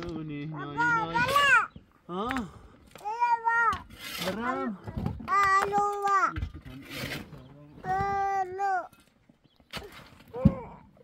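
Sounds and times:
child calling out: 0:03.0 - 0:03.8.

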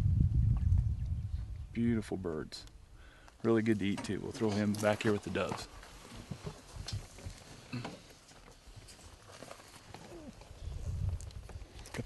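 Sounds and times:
low rumble: 0:00.0 - 0:01.7
rustling: 0:03.7 - 0:12.0.

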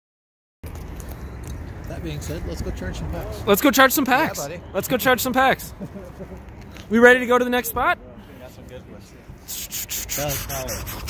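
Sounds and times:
rubbing and scraping on microphone: 0:09.4 - 0:11.0.

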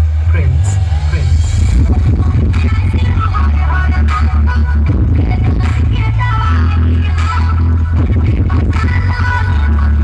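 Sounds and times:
bass-heavy music on sound system: 0:00.0 - 0:10.0
person speaking over music: 0:00.2 - 0:01.5.

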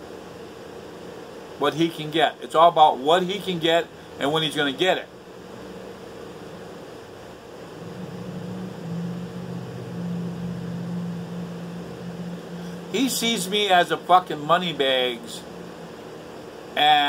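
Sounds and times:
window air conditioner hum: 0:00.0 - 0:17.0
low motor drone: 0:03.5 - 0:17.0.

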